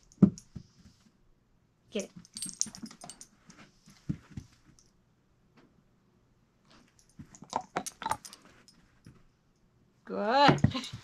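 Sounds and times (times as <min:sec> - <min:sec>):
metal chain collar jingling: 0:02.2 - 0:03.3, 0:07.0 - 0:08.8.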